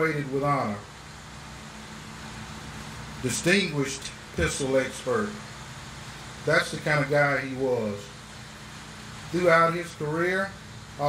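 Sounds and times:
faint low hum: 0:00.0 - 0:11.0
steady background hiss: 0:00.0 - 0:11.0.

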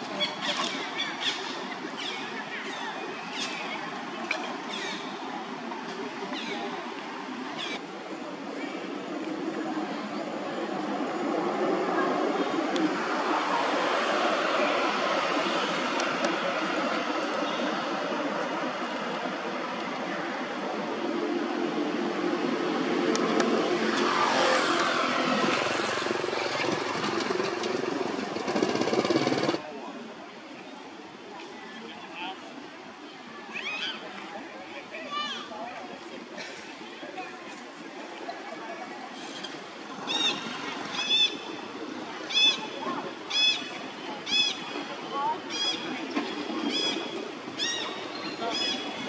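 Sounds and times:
vehicle engine passing by: 0:22.8 - 0:29.6.

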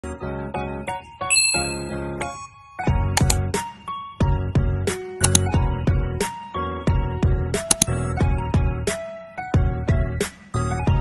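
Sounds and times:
bright chime-like ding: 0:01.3 - 0:02.1.

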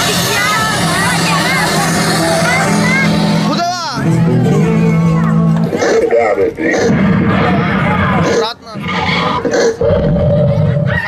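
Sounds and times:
children shouting: 0:00.0 - 0:03.6
party music: 0:00.0 - 0:08.8.

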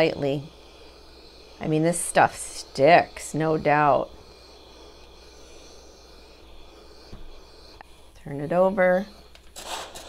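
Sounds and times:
iron rustling over fabric: 0:00.0 - 0:10.0.

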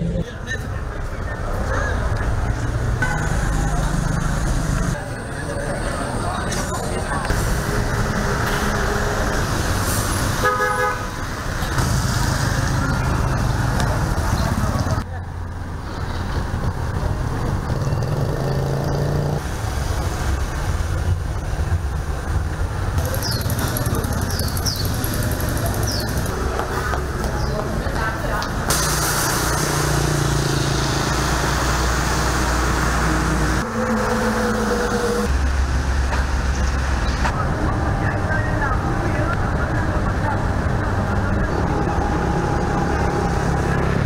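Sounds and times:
indistinct voices: 0:00.0 - 0:10.4, 0:22.8 - 0:44.0
road traffic engine rumble: 0:00.0 - 0:44.0
faint voices: 0:22.9 - 0:28.8.

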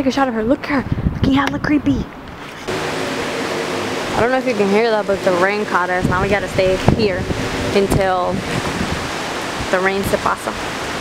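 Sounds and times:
rain falling: 0:02.7 - 0:11.0.

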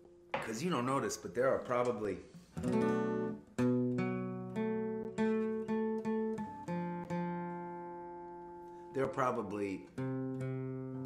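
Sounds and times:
acoustic guitar strummed slowly: 0:02.3 - 0:11.0.

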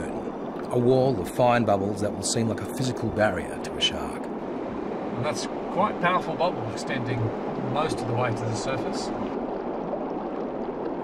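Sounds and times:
underwater air bubbles rushing: 0:04.2 - 0:11.0.

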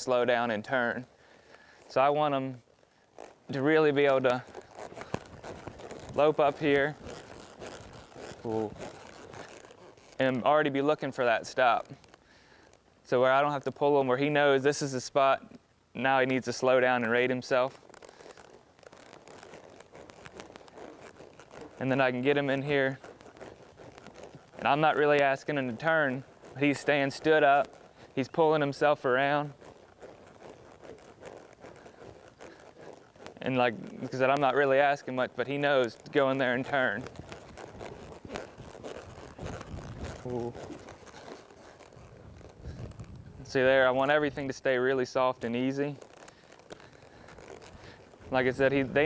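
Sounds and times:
horse hooves crunching dirt: 0:00.0 - 0:49.0
tack shifting: 0:01.5 - 0:14.8, 0:16.2 - 0:49.0
small irregular clicks: 0:02.6 - 0:14.0, 0:16.2 - 0:43.7, 0:45.4 - 0:49.0.

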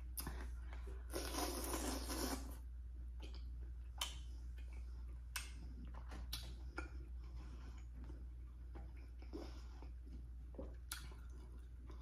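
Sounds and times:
chewing: 0:03.2 - 0:12.0.

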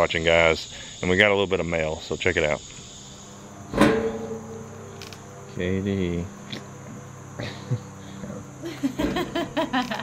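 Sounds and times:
insects chirring: 0:00.0 - 0:10.0
sharp hit with ringing tail: 0:03.7 - 0:07.4.

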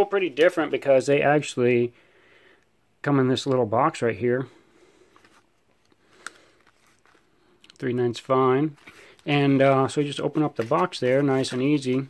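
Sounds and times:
man talking: 0:00.0 - 0:02.0, 0:03.0 - 0:04.7, 0:07.6 - 0:12.0.

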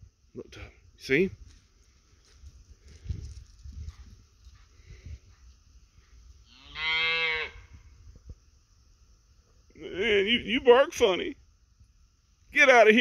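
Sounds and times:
man talking: 0:00.3 - 0:01.4, 0:09.7 - 0:11.4, 0:12.5 - 0:13.0
cow mooing: 0:06.5 - 0:07.6.

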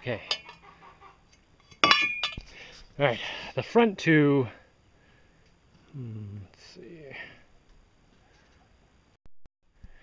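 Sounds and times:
metal pipes clinking: 0:00.0 - 0:00.6, 0:01.6 - 0:02.6.

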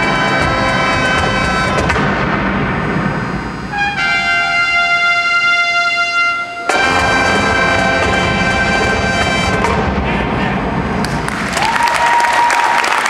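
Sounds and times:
horns holding long chord: 0:00.0 - 0:11.2
marching band playing: 0:00.0 - 0:11.4.

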